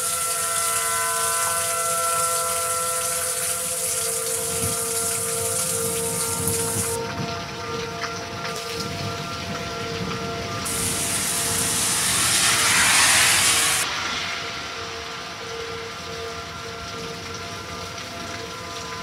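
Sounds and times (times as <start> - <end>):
tornado warning siren: 0.0 - 19.0
heavy rain hissing: 3.7 - 7.0, 10.7 - 16.1
gust of wind-driven rain: 8.8 - 17.2.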